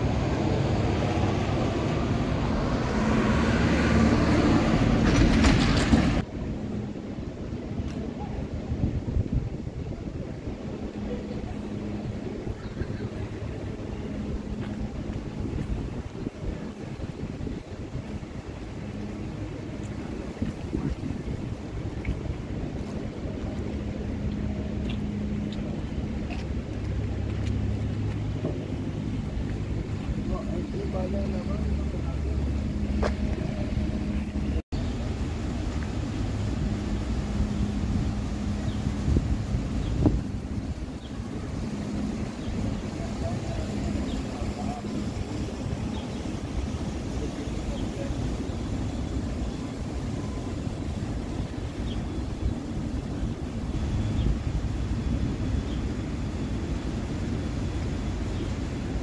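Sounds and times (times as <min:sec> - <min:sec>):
traffic rumble: 0:00.0 - 0:59.0
vehicle engines idling: 0:00.0 - 0:59.0
voices of passers-by: 0:00.0 - 0:59.0.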